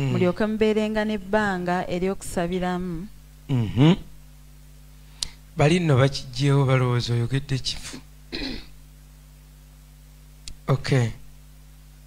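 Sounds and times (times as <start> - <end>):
low electrical hum: 0.0 - 12.0
person clearing throat: 3.5 - 4.1, 7.9 - 8.8.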